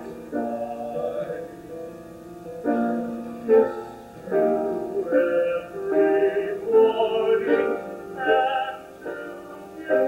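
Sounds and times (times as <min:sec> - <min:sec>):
solo voice singing slow song: 0:00.0 - 0:01.7, 0:04.5 - 0:10.0.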